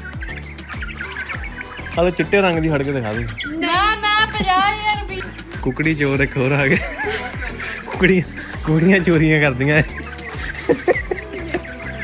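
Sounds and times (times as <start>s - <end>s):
background music: 0.0s - 12.0s
hens clucking: 0.0s - 12.0s.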